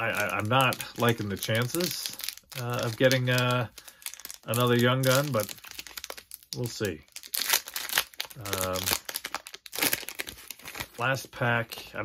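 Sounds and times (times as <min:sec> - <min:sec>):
wrapper tearing open: 0:00.0 - 0:11.0
plastic wrapper crinkling: 0:00.0 - 0:11.5.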